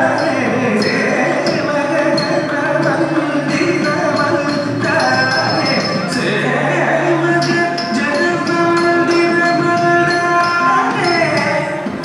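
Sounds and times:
drum strokes: 0:00.0 - 0:06.4
person singing: 0:00.0 - 0:12.0.

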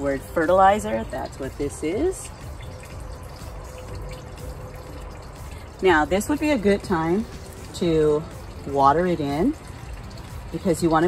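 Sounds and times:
woman's voice: 0:00.0 - 0:02.3, 0:05.8 - 0:09.6.

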